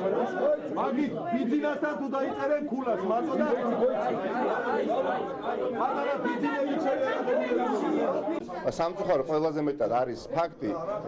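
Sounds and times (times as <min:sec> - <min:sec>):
crowd of men talking: 0:00.0 - 0:11.0.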